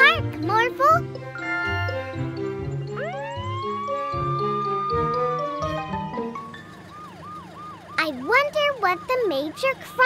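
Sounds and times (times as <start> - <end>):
cartoon police siren wailing: 2.9 - 10.0.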